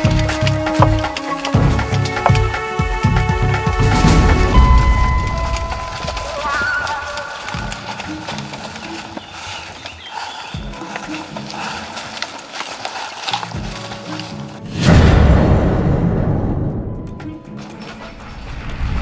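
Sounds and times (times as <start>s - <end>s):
background music held tones: 0.0s - 19.0s
sudden loud hit: 14.8s - 17.0s.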